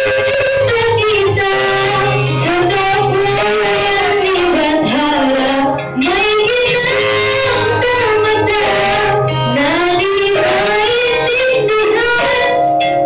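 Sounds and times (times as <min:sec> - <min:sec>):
backing music with guitar: 0:00.0 - 0:13.0
girl singing into microphone: 0:00.0 - 0:13.0.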